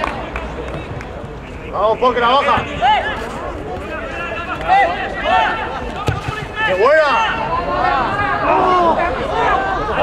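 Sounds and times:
distant shouting voices: 0:01.4 - 0:10.0.

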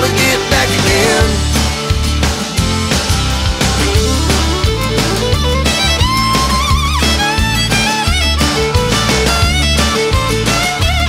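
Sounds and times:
bass: 0:00.0 - 0:11.0
guitar: 0:00.0 - 0:11.0
steady drum beat: 0:00.0 - 0:11.0
fiddle playing lead: 0:02.5 - 0:11.0.

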